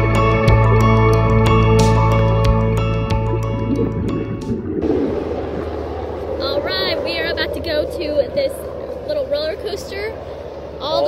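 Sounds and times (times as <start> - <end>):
background music: 0.0 - 5.0
wind rumbling on microphone: 3.0 - 11.0.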